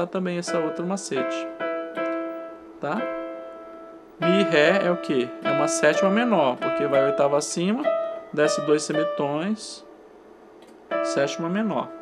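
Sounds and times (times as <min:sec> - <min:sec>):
electronic keyboard two-note interval: 0:00.0 - 0:10.0, 0:10.9 - 0:12.0.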